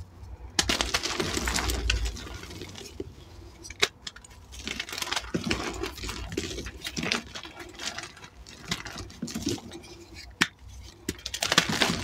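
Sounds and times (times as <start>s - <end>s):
chalk crunching and crumbling: 0.6s - 12.0s.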